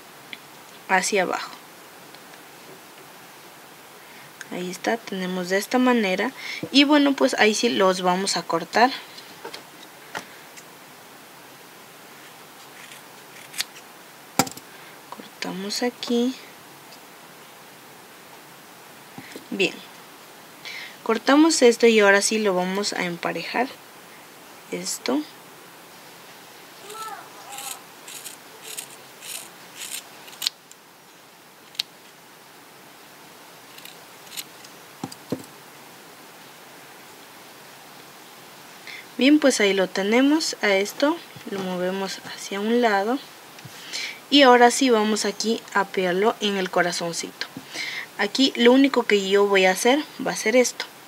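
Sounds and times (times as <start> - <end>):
scissor blades clicking: 27.6 - 30.5.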